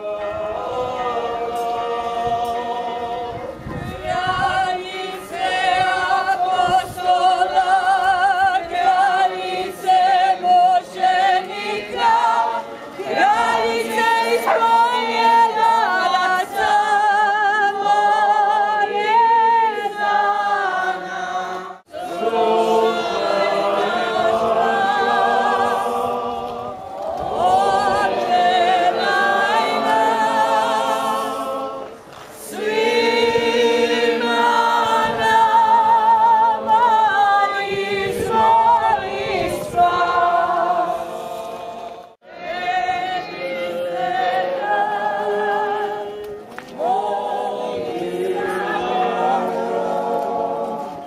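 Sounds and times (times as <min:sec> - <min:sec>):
group singing a hymn unaccompanied: 0:00.0 - 0:51.0.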